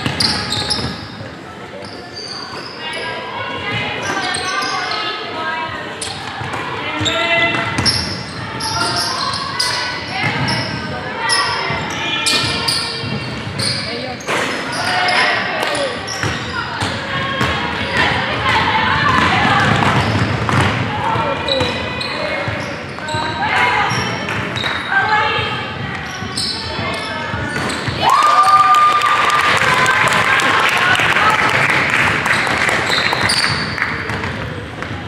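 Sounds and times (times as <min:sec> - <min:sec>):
sneakers squeaking on floor: 0:00.0 - 0:28.1, 0:32.3 - 0:35.0.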